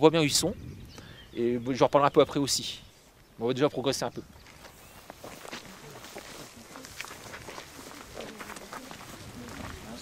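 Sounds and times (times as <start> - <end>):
footsteps on dirt path: 4.3 - 10.0.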